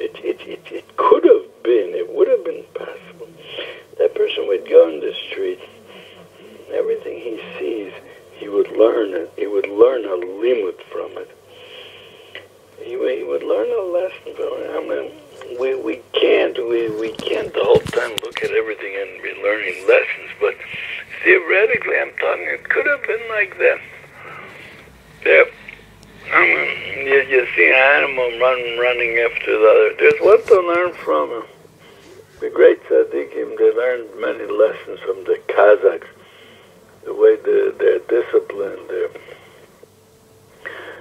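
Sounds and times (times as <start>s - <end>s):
man talking: 0.0s - 11.3s, 12.8s - 31.5s, 32.4s - 36.1s, 37.0s - 39.3s.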